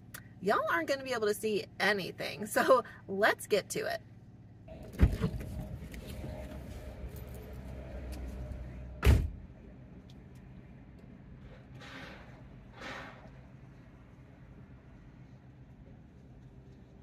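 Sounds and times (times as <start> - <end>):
minivan rumble inside cabin: 0.0 - 17.0.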